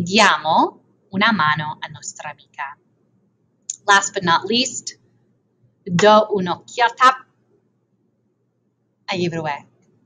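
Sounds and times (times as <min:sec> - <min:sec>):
woman speaking: 0:00.0 - 0:02.8, 0:03.7 - 0:05.0, 0:05.9 - 0:07.2, 0:09.1 - 0:09.6.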